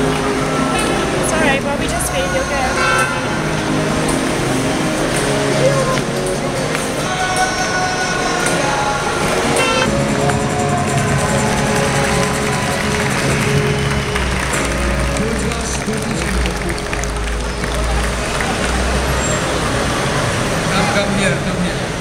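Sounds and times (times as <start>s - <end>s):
city street traffic: 0.0s - 22.0s
large vehicle engine rumble: 0.0s - 22.0s
street musician's amplified music: 0.0s - 22.0s.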